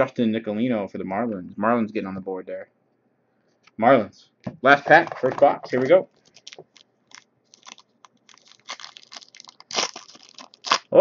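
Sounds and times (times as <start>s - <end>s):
foil wrapper crinkling: 6.2s - 11.0s
foil wrapper ripping: 6.2s - 11.0s.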